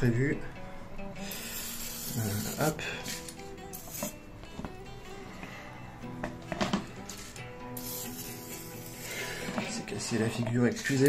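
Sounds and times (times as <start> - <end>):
acoustic guitar music: 0.0 - 11.0
aerosol spray can hissing: 1.2 - 2.7, 7.8 - 9.3.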